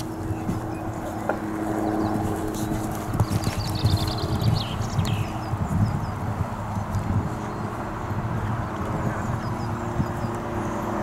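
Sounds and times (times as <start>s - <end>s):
horse hooves thudding on sand: 0.0s - 7.5s.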